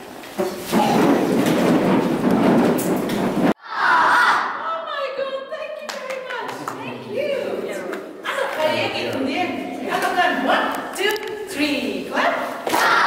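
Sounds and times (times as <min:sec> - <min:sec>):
woman speaking: 0:04.6 - 0:12.5.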